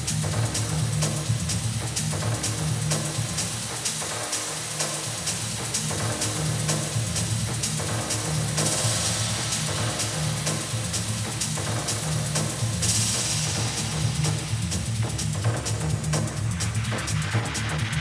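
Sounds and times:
minimal techno music: 0:00.0 - 0:18.0.

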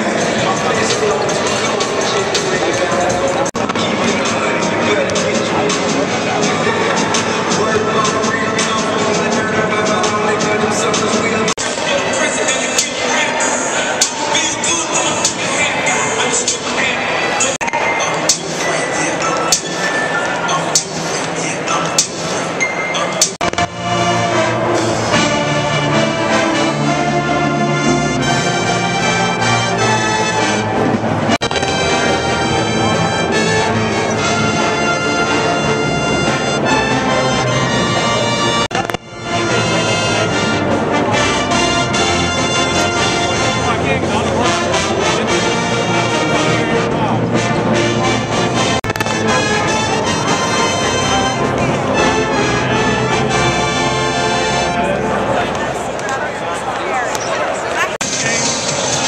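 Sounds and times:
brass band playing: 0:23.4 - 0:55.5.

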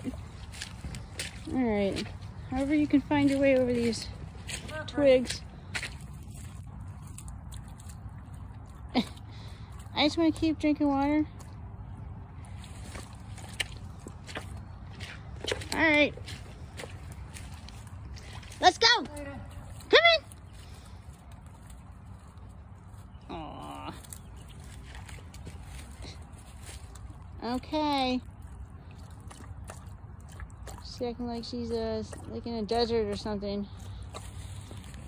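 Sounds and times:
steady low rumble: 0:00.0 - 0:18.6
dog lapping water: 0:24.3 - 0:35.0.

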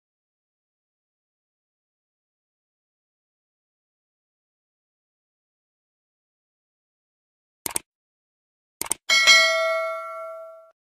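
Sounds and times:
notification bell chime: 0:09.1 - 0:10.8.

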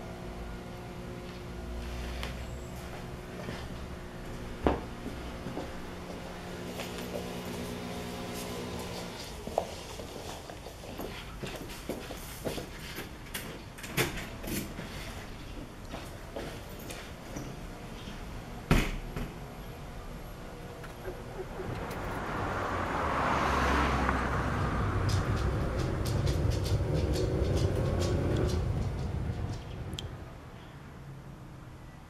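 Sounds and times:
car rumble: 0:00.0 - 0:09.5, 0:17.5 - 0:30.4
boots walking on wooden floor: 0:01.2 - 0:13.6, 0:25.0 - 0:29.6.

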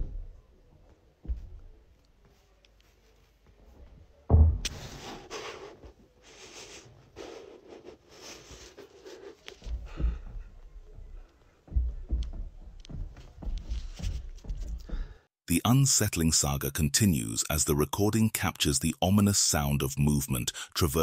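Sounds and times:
thuds and knocks on roof: 0:09.6 - 0:15.1.

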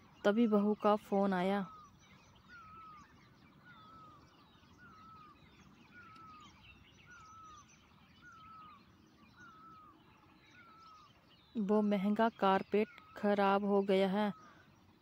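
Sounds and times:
bird whistling: 0:00.0 - 0:11.6
small bird chirps: 0:00.0 - 0:15.0.

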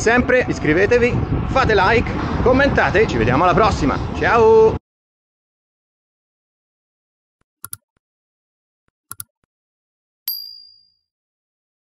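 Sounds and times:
notification bell ding: 0:10.3 - 0:11.0.

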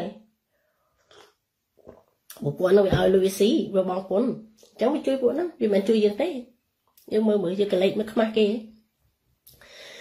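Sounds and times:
woman speaking: 0:00.0 - 0:00.3, 0:02.3 - 0:08.8.

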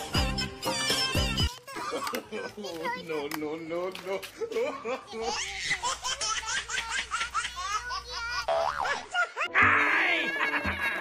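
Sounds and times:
comic boing sound effect: 0:08.5 - 0:09.0.

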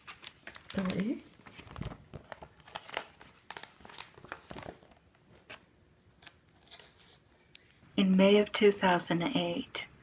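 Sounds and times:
pages turning: 0:00.0 - 0:08.2
plastic sleeves crinkling: 0:00.0 - 0:08.3.

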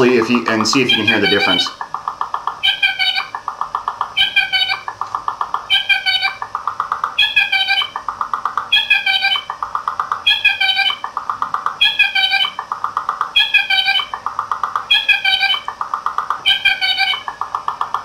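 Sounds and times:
electronic bird call repeating: 0:00.0 - 0:17.6.

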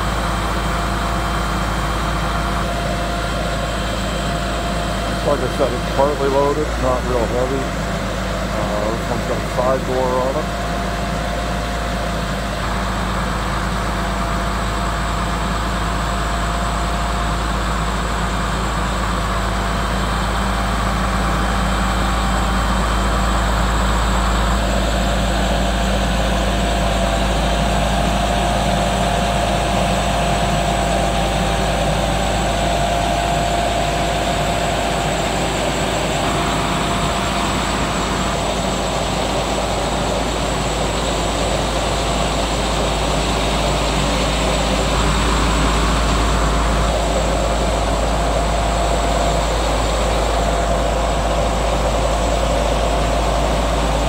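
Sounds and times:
diesel truck engine droning: 0:00.0 - 0:54.0
hydraulic whine: 0:00.0 - 0:54.0.

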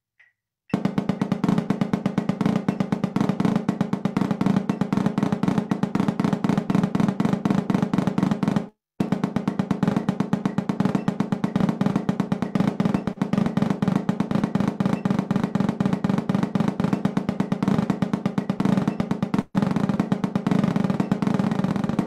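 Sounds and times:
snare drum roll: 0:00.7 - 0:22.0.

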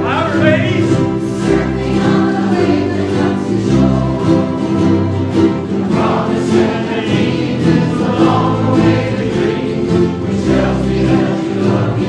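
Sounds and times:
choir singing: 0:00.0 - 0:12.0
ukuleles strumming: 0:00.0 - 0:12.0.

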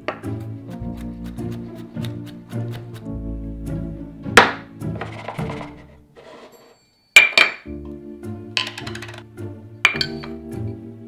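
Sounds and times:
background music: 0:00.0 - 0:06.6, 0:07.2 - 0:11.0.

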